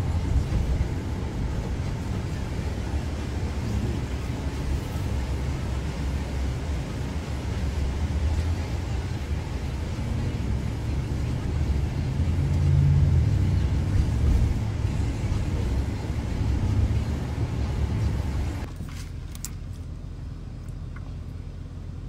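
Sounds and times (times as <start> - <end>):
car rumble from inside cabin: 0.0 - 22.0.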